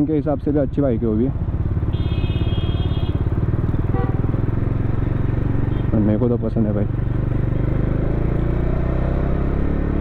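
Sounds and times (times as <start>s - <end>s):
motorcycle engine running: 0.0s - 10.0s
high horn note: 3.9s - 4.3s.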